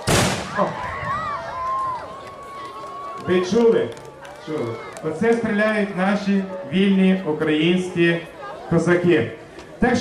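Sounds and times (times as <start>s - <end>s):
loud gunshot with echo: 0.0s - 0.7s.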